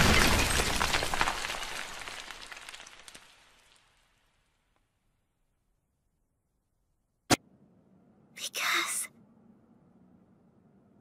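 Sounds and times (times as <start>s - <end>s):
debris raining down: 0.0s - 4.7s.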